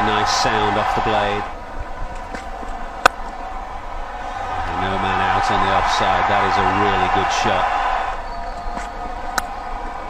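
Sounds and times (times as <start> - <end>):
crowd noise: 0.0 - 10.0
bat cracking on ball: 2.1 - 3.4, 8.7 - 9.6.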